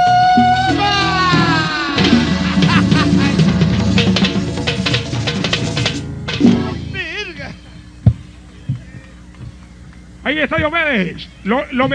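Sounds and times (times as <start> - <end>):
accordion chords: 0.0 - 11.9
drum strokes: 0.4 - 7.3.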